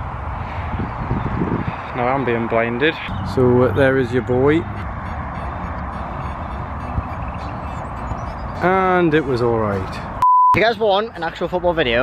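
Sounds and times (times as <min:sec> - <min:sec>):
motorway traffic rumble: 0:00.0 - 0:12.0.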